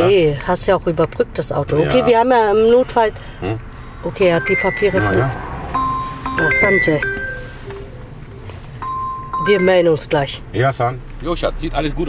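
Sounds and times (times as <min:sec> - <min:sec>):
car engine idling: 0:02.1 - 0:09.4
electronic beep tone: 0:03.8 - 0:09.9.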